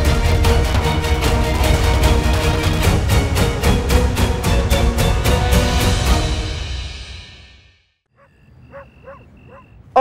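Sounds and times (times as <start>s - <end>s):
crickets chirping: 8.1s - 10.0s
distant dog barking: 8.1s - 10.0s.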